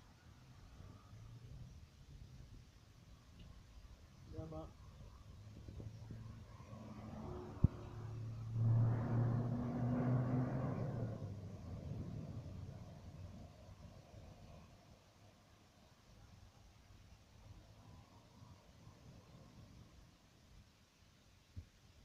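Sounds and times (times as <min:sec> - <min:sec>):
car engine hum passing by: 0:05.4 - 0:14.7.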